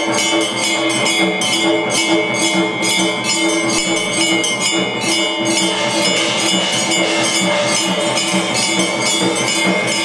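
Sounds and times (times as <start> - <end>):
metallic percussion struck: 0.0 - 10.0
steady ringing tones: 0.0 - 10.0.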